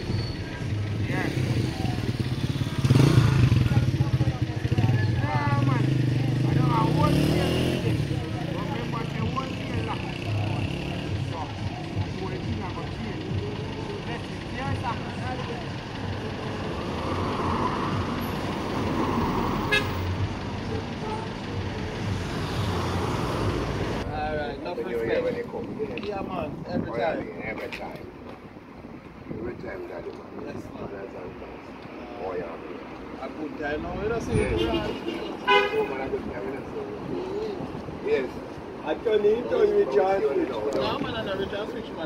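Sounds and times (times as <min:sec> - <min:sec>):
road noise: 0:00.0 - 0:42.0
scattered voices: 0:00.0 - 0:42.0
vehicle passing by: 0:00.8 - 0:11.4, 0:15.3 - 0:24.3.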